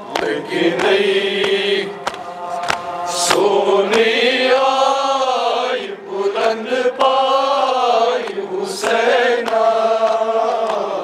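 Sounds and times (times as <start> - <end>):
lead voice on a microphone: 0.0 - 11.0
men chanting a lament: 0.0 - 11.0.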